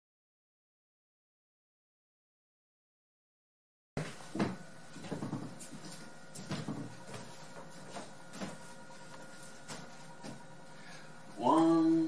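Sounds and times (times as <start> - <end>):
footsteps on wooden floorboards: 4.0 - 10.5
faint steady hum: 4.0 - 12.0.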